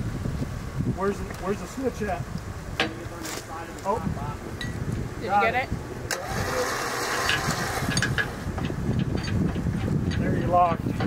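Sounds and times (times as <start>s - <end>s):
winch motor whine: 6.0s - 8.8s.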